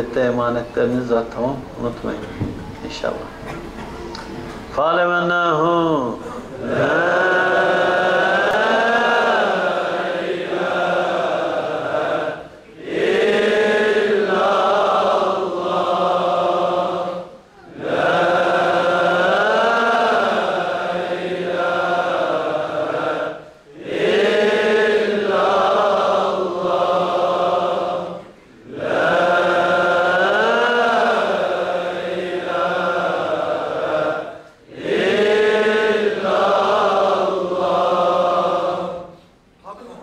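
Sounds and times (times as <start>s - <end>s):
men chanting together: 6.4s - 39.2s.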